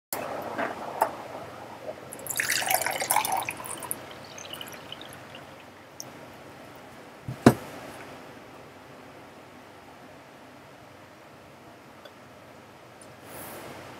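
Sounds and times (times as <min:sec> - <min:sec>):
water pouring into a glass: 0:00.2 - 0:05.8
water drips: 0:00.2 - 0:06.1.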